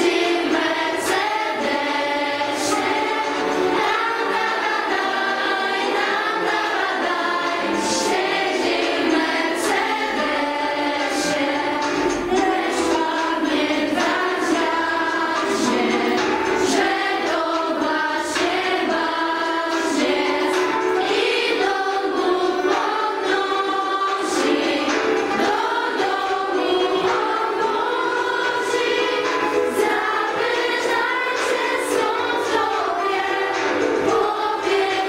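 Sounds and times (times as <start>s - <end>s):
girls singing together: 0.0s - 35.0s.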